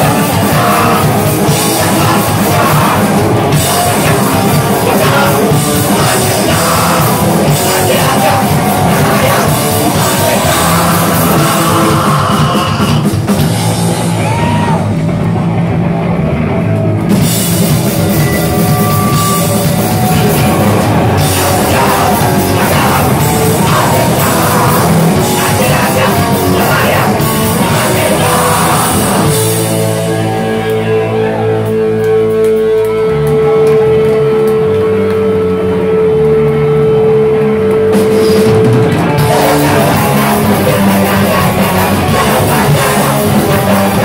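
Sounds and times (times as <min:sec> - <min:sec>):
fast drum kit: 0:00.0 - 0:30.7, 0:37.9 - 0:44.0
bass guitar: 0:00.0 - 0:44.0
distorted guitars: 0:00.0 - 0:44.0
punk band playing live: 0:00.0 - 0:44.0
high held tone: 0:17.2 - 0:44.0.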